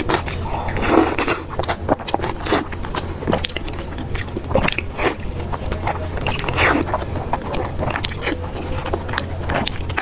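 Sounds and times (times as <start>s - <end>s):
close-miked chewing: 0.0s - 10.0s.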